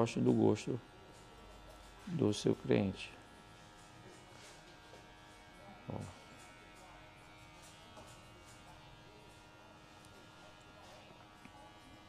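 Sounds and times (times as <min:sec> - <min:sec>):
barbershop background hum: 0:00.0 - 0:12.0.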